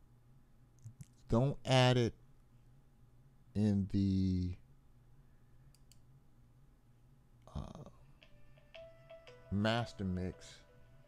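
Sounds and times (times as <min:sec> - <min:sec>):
computer mouse clicks: 0:05.7 - 0:06.1
mobile phone ringtone: 0:08.2 - 0:09.6.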